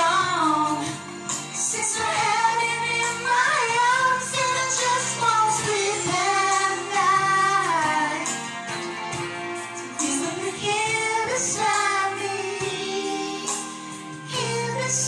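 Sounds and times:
woman singing a pop ballad: 0:00.0 - 0:08.6, 0:09.9 - 0:15.0
backing track: 0:00.0 - 0:15.0.

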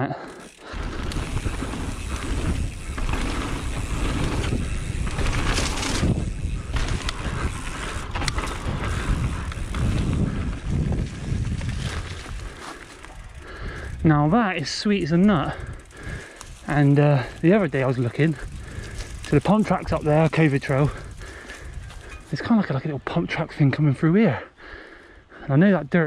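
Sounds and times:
tyres rumbling on dirt: 0:00.0 - 0:23.0
wind buffeting microphone: 0:00.7 - 0:22.4.

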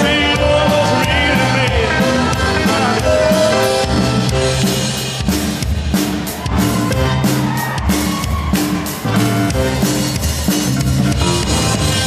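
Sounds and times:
drum kit beat: 0:00.0 - 0:12.0
rock and roll band playing: 0:00.0 - 0:12.0.

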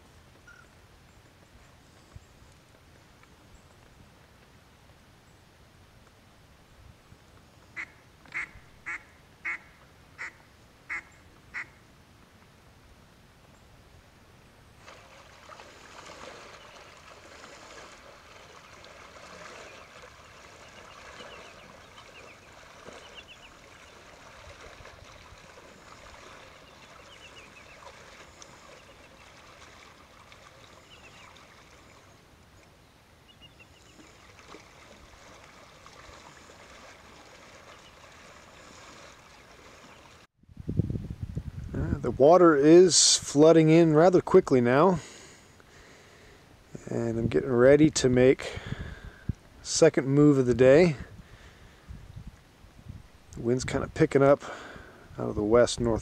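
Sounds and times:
duck quacking: 0:07.8 - 0:11.8
water sloshing from wading: 0:14.7 - 0:40.3.

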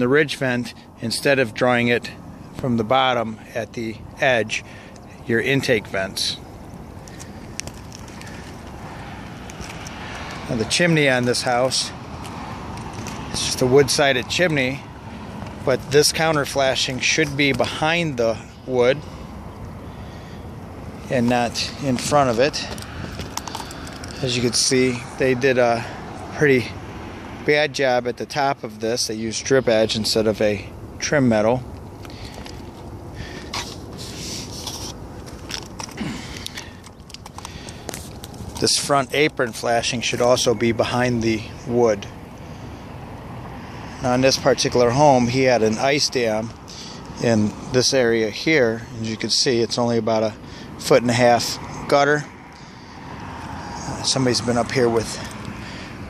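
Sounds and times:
gritty scraping and rubbing: 0:07.0 - 0:19.0, 0:21.0 - 0:25.8, 0:31.4 - 0:40.5.

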